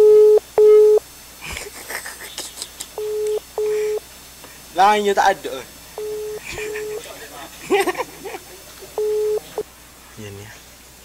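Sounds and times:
person speaking: 3.0s - 4.0s, 4.7s - 9.6s
telephone ringback tone: 3.0s - 4.0s, 6.0s - 7.0s, 9.0s - 9.6s.

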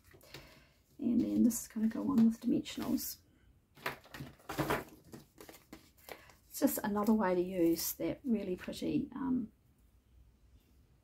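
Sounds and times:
cardstock rustling on table: 3.8s - 8.0s.

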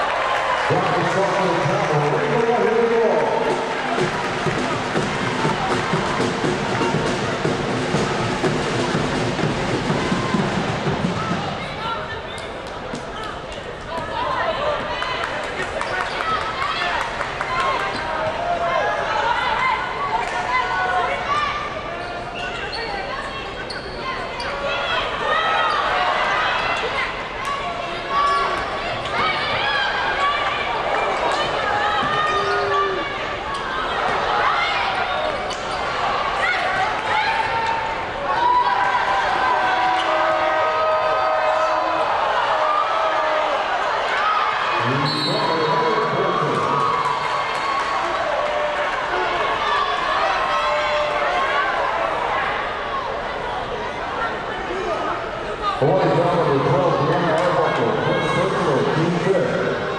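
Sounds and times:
voices in arena: 0.0s - 59.9s
sneakers squeaking: 21.6s - 24.9s, 35.2s - 36.6s.

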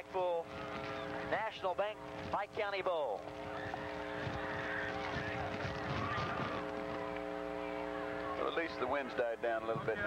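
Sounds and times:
steady droning hum: 0.0s - 10.0s
stadium crowd noise: 3.4s - 10.0s.

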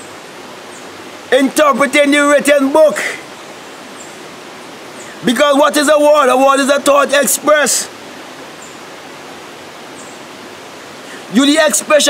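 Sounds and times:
river water rushing: 0.0s - 12.0s.

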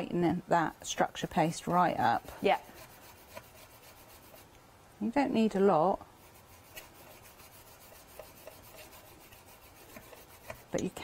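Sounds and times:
paintbrush brushing: 0.0s - 4.5s, 6.2s - 11.0s.

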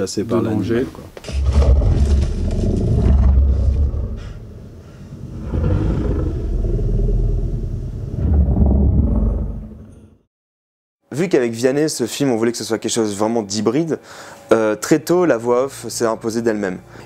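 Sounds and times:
deep rumbling creature sound: 1.3s - 10.3s.

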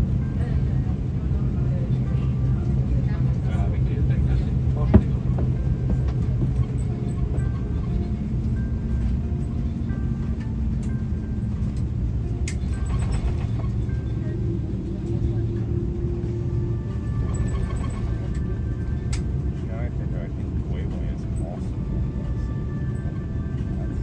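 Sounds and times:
low rumble of engines and airflow: 0.0s - 24.0s
music: 0.0s - 24.0s.

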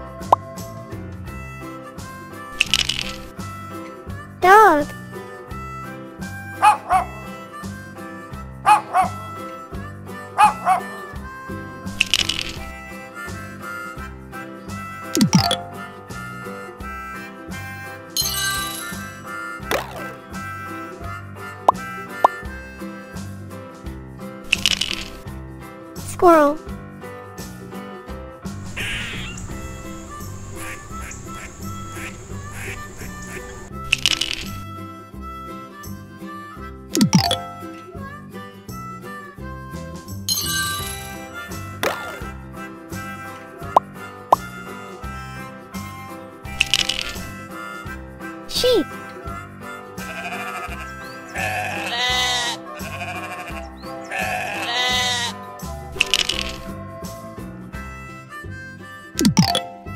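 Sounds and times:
cheerful children's music: 0.0s - 59.9s
dog barking: 6.6s - 7.2s, 8.7s - 9.2s, 10.4s - 10.9s
squirrel chattering: 28.6s - 34.6s.

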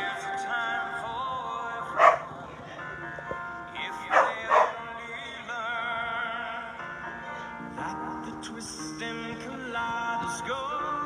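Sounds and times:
television music: 0.0s - 11.0s
dog barking: 1.9s - 2.3s, 4.1s - 4.8s.

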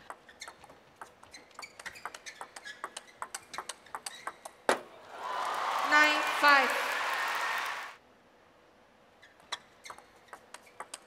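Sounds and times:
ping pong ball ticking: 0.0s - 4.6s, 9.9s - 11.0s
crowd applause: 5.0s - 8.0s.

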